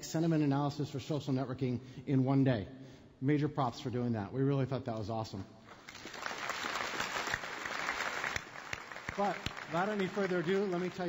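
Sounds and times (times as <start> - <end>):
audience applauding: 5.8 - 11.0.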